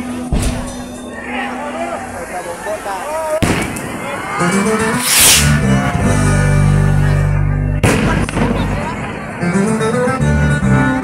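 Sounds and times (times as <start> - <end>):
voices: 0.0 - 11.0
firework bang: 3.4 - 4.2, 5.0 - 5.6, 7.8 - 8.9
music: 4.3 - 11.0
firework hissing burst: 4.8 - 5.7.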